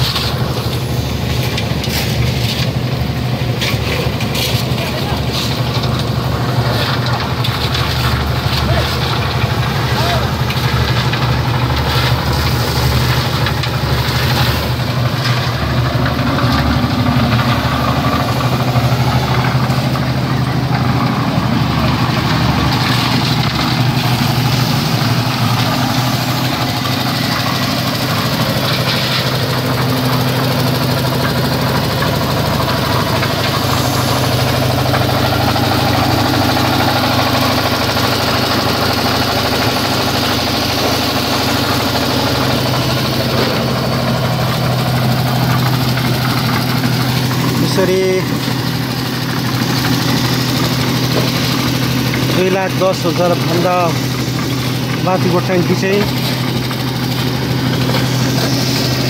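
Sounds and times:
concrete mixer engine running: 0.0 - 59.0.

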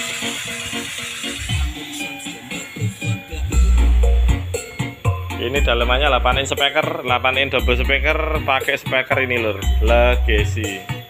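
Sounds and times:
music through speakers: 0.0 - 11.0.

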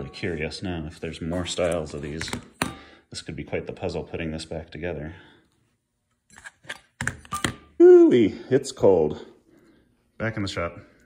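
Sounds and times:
man saying ooh: 7.8 - 8.5.

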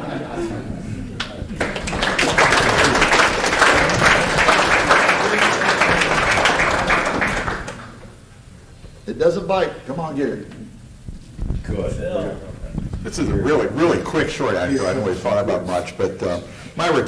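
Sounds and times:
audience applauding: 1.2 - 8.2.

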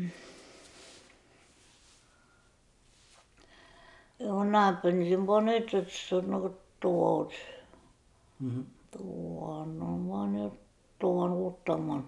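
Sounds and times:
person humming: 0.0 - 0.3, 8.4 - 9.1
person saying hmm: 0.0 - 0.3, 8.4 - 8.8.

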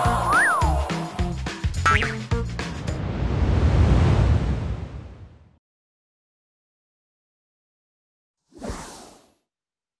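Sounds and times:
whoosh: 2.6 - 5.6.

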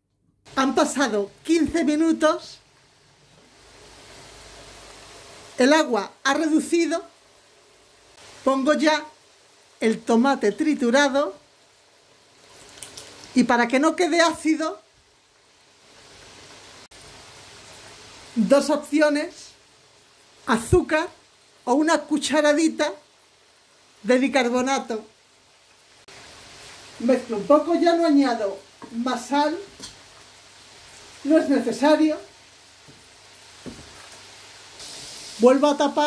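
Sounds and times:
sauce simmering with sizzling hiss: 0.5 - 36.0.

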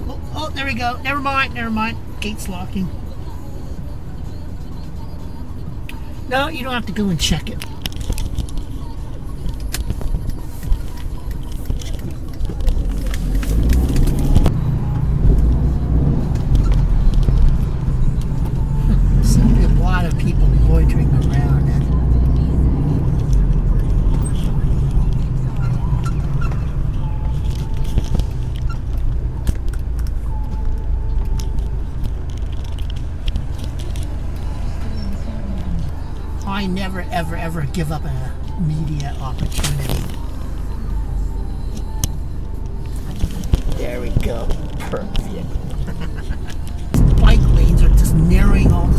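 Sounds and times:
car engine and tyre rumble: 0.0 - 48.9.

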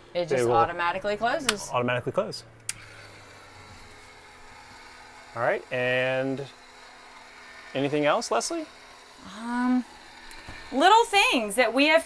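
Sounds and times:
roof vent fan humming: 0.0 - 12.0.

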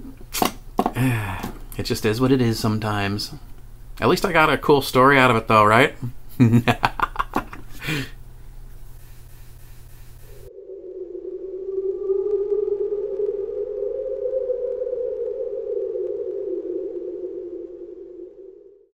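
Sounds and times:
synthesized drone: 10.4 - 18.9.

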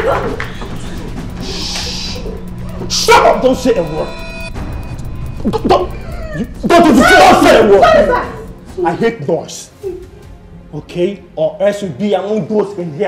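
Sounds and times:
people crying and whimpering: 0.0 - 3.0, 5.4 - 9.0, 9.7 - 10.4
film soundtrack music: 0.0 - 13.0.

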